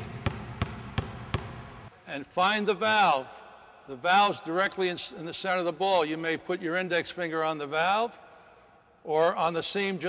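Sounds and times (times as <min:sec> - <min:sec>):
basketball bouncing on wooden floor: 0:00.0 - 0:01.9.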